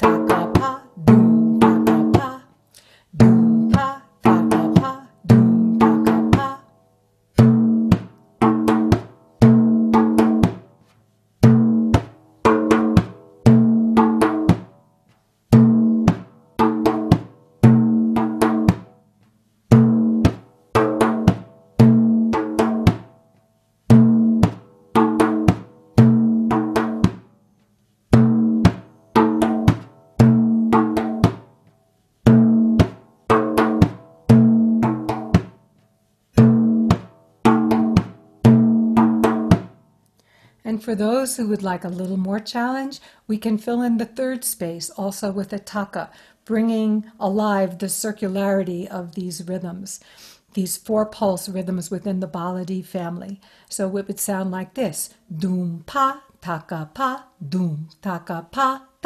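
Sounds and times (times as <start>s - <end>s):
frame drum played by hand: 0.0s - 2.4s, 3.2s - 6.6s, 7.4s - 10.7s, 11.4s - 14.8s, 15.5s - 19.0s, 19.7s - 23.2s, 23.9s - 27.3s, 28.1s - 31.6s, 32.2s - 35.6s, 36.4s - 39.8s.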